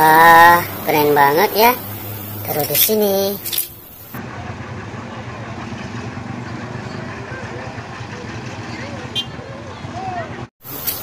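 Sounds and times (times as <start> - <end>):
tow truck engine running: 0.0 - 11.0
faint voices: 4.2 - 10.5.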